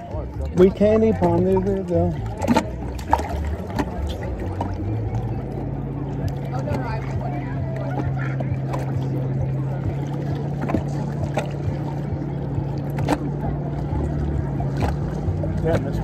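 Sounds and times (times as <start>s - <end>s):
boat motor running: 0.0s - 16.0s
water lapping against hull: 0.0s - 16.0s
water slaps: 0.0s - 16.0s.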